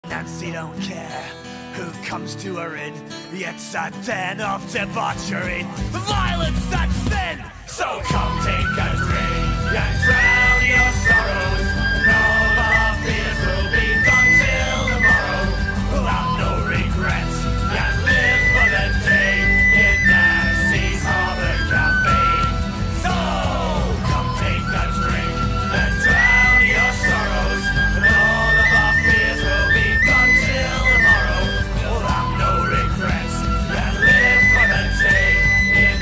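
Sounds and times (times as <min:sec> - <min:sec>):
band backing track with drums: 0:05.8 - 0:36.0
tin whistle folk melody: 0:07.2 - 0:36.0.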